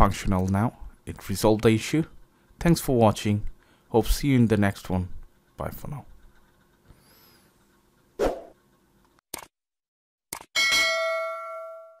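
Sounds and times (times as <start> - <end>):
bell-like chime ringing: 10.6 - 12.0.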